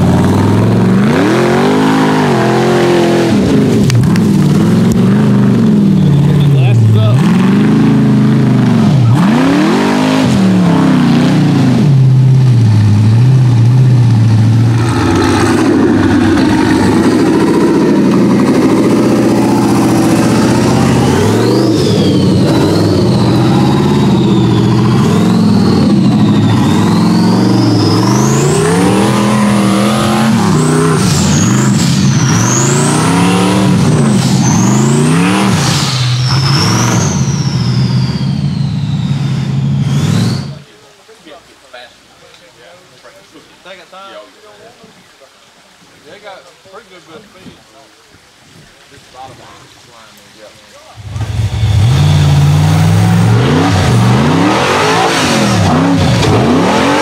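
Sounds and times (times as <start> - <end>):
buggy engine revving hard: 0.0 - 40.6, 51.0 - 57.0
high whine: 11.8 - 40.7.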